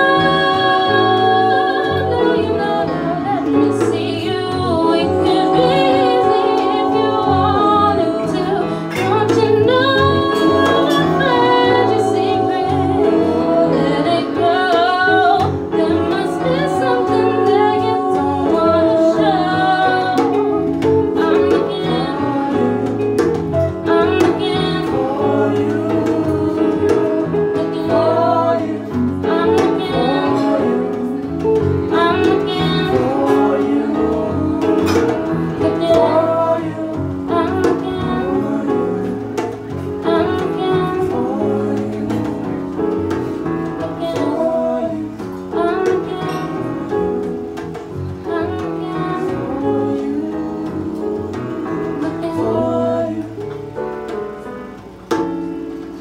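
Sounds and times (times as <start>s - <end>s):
woman singing: 0.0s - 54.1s
electric guitar: 0.0s - 56.0s
hand drum beat: 0.0s - 56.0s.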